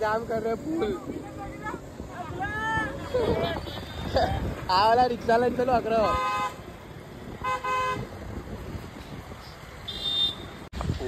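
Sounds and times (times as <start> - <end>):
road and engine rumble: 0.0 - 11.0
vehicle horn toots: 6.0 - 6.6, 7.4 - 8.1, 9.9 - 10.6.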